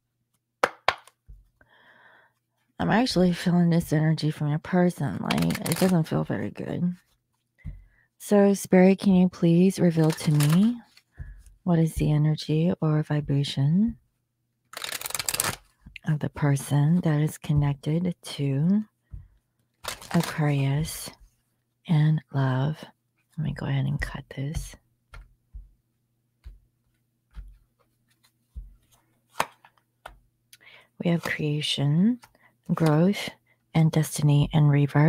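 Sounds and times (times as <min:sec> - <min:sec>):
sharp card snap: 0:00.6 - 0:01.2
cards being shuffled: 0:00.6 - 0:01.5, 0:05.2 - 0:06.2, 0:09.8 - 0:11.2, 0:14.7 - 0:16.0, 0:19.8 - 0:20.9, 0:26.4 - 0:30.2.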